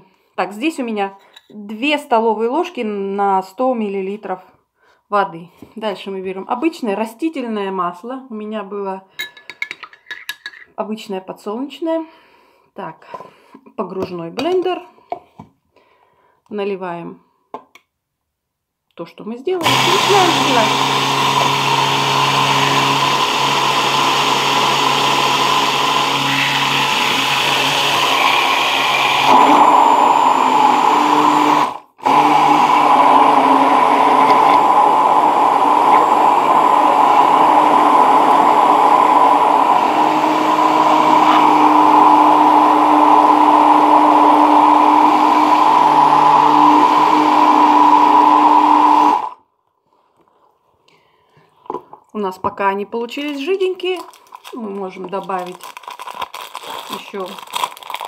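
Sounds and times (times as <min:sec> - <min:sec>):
immersion blender running: 0:19.6 - 0:49.4.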